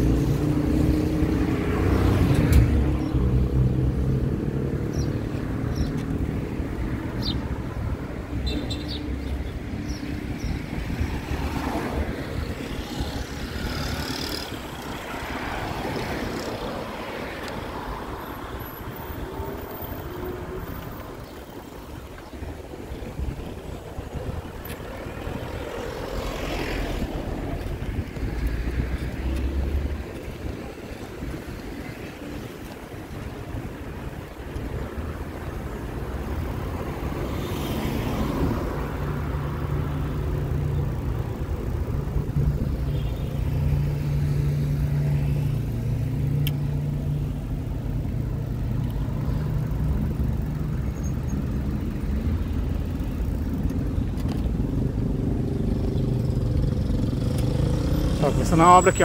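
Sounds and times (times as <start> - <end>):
engine hum: 0.0 - 59.0
road and wind rush: 0.0 - 59.0
vehicle passing: 24.8 - 31.3, 54.2 - 59.0.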